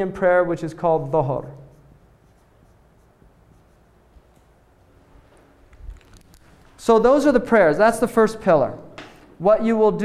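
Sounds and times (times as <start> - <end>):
marker drawing on whiteboard: 1.6 - 4.6.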